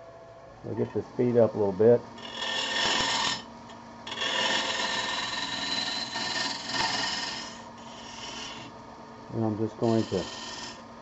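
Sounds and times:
steady hum: 0.0 - 11.0
wood lathe gouge cutting: 2.2 - 3.4, 4.1 - 8.7, 9.8 - 10.8.

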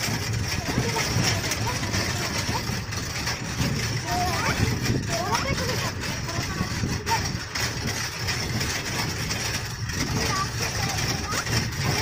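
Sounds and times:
vehicle rumbling on dirt track: 0.0 - 12.0.

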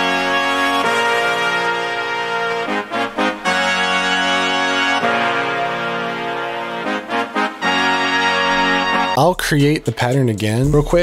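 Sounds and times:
brass section chords: 0.0 - 9.4
brass stabs: 0.0 - 9.6.

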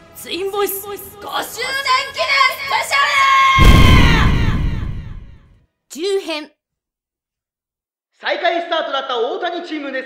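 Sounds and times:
deep booming sound effect: 3.6 - 5.5.

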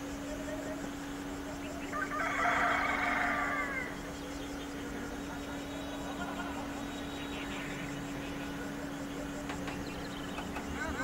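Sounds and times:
rooster crowing: 1.8 - 4.0.

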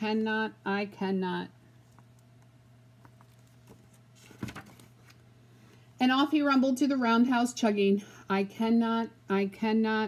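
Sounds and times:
low steady hum: 0.0 - 10.0
book rustle and knock: 3.0 - 5.2.

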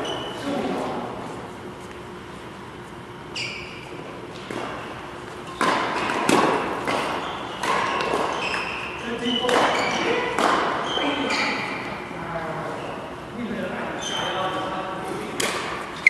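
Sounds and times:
shoes squeaking on court: 0.0 - 12.1, 14.0 - 14.8
racket striking shuttlecock: 4.3 - 10.9, 15.4 - 16.0.

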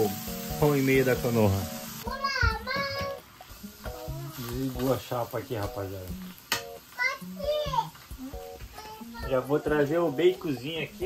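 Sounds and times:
patties sizzling on griddle: 0.0 - 11.0.

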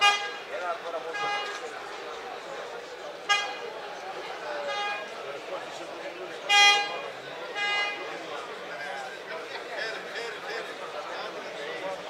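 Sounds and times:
tractor horn toots: 0.0 - 0.5, 1.1 - 1.6, 3.2 - 3.6, 6.5 - 8.0
crowd babble: 0.0 - 12.0.

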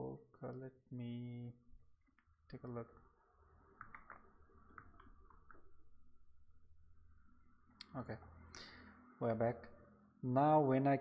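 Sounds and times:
man speaking: 0.0 - 1.6, 2.5 - 3.0, 7.8 - 8.3, 9.2 - 11.0.

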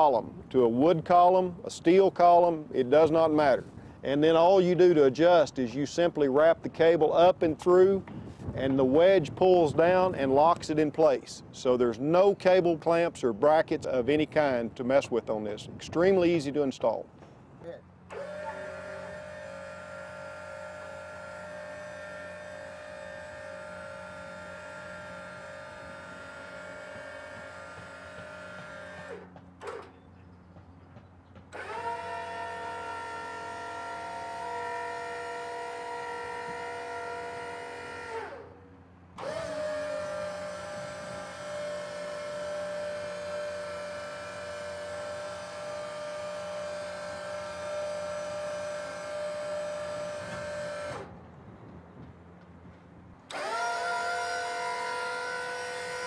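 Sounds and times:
electric motor whining: 18.1 - 29.9, 31.5 - 38.6, 39.2 - 51.2, 53.3 - 56.0.

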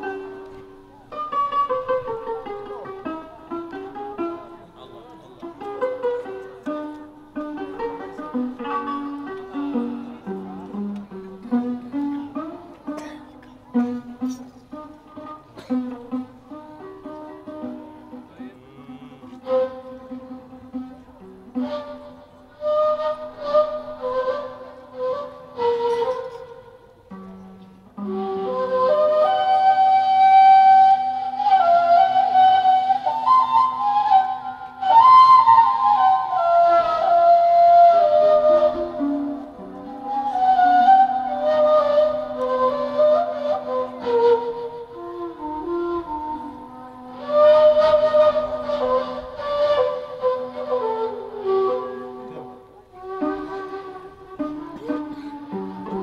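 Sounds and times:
slow instrumental improvisation: 0.0 - 56.0.

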